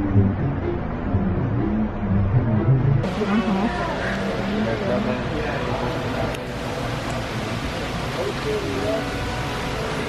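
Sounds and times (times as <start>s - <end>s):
steady low rumble: 0.0s - 10.0s
indistinct chatter: 3.0s - 10.0s.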